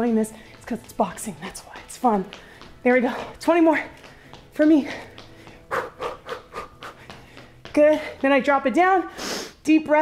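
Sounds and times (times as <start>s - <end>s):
woman's sharp exhaled breaths: 9.1s - 9.6s.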